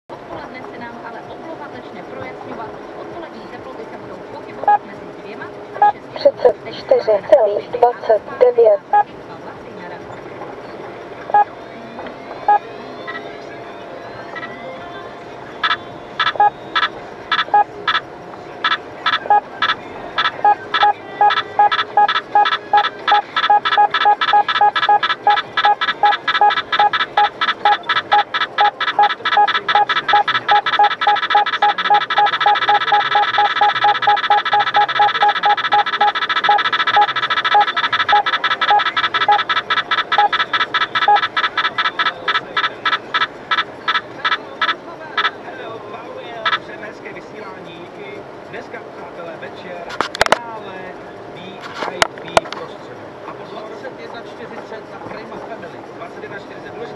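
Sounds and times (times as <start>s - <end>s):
radar detector electronic beeps: 5.8s - 6.5s, 11.3s - 11.5s, 15.6s - 18.0s, 18.6s - 45.3s.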